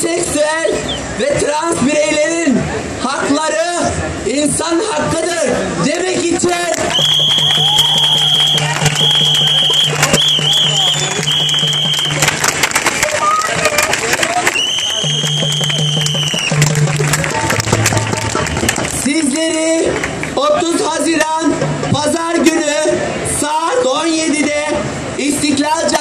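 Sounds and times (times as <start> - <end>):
crowd cheering and clapping: 5.9 - 20.4
whistle blasts: 6.9 - 12.3, 14.5 - 16.7.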